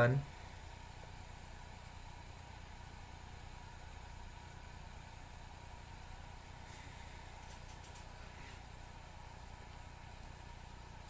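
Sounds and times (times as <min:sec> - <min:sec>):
low electrical hum and hiss: 0:00.0 - 0:11.0
faint clicks: 0:07.4 - 0:08.1.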